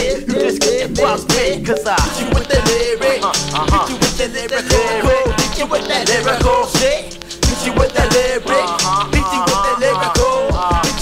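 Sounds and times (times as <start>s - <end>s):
rapping over a beat: 0.0s - 11.0s.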